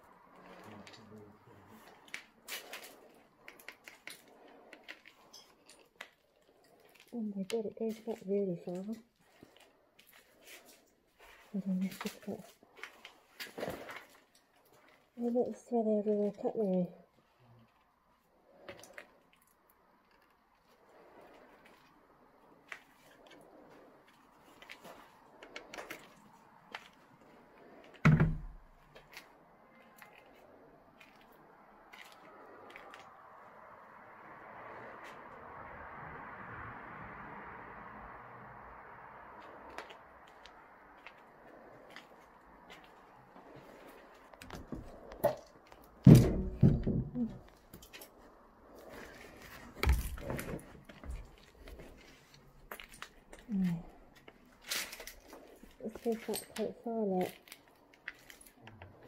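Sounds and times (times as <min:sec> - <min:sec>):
loud thumps and knocks: 0:46.1 - 0:47.3.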